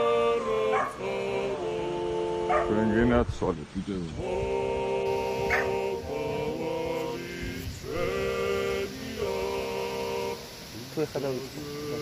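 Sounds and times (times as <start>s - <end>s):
men singing a cappella: 0.0s - 3.2s, 4.0s - 12.0s.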